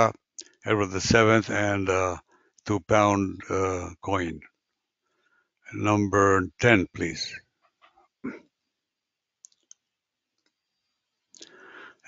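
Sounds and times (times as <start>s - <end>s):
person speaking: 0.0s - 4.4s, 5.7s - 7.4s
soft breath: 5.0s - 5.6s, 11.4s - 12.0s
faint sharp clicks: 9.4s - 10.6s.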